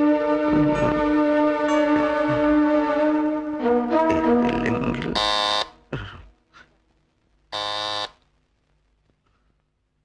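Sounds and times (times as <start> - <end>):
electric doorbell buzzer: 5.2 - 5.7, 7.6 - 8.1.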